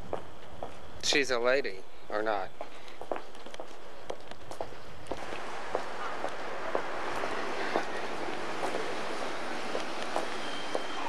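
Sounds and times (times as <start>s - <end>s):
footsteps walking: 0.0s - 1.2s, 2.6s - 11.0s
steady background hiss: 0.0s - 11.0s.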